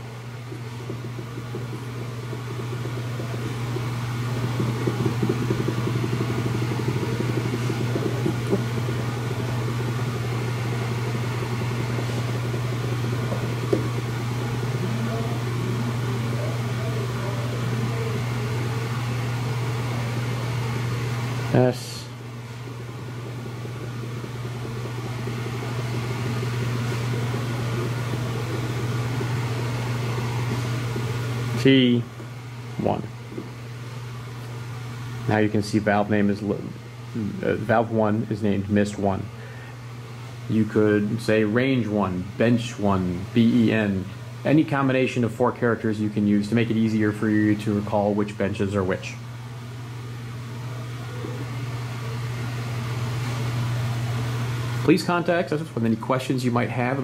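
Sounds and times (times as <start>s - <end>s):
low background hum: 0.0s - 57.0s.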